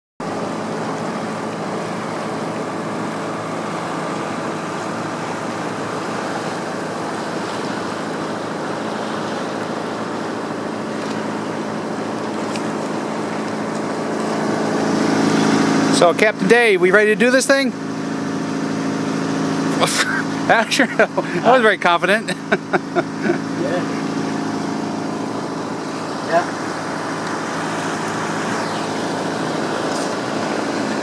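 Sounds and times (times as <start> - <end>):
motor boat engine running: 0.2 - 31.0
water wash: 0.2 - 31.0.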